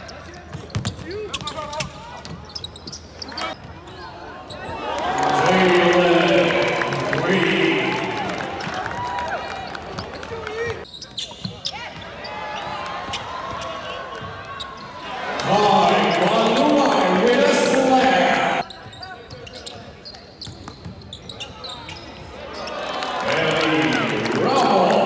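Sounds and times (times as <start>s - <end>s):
basketball bouncing on court: 0.4s - 2.9s
loud crowd voices: 3.2s - 25.0s
voices: 4.5s - 8.8s, 15.0s - 18.7s.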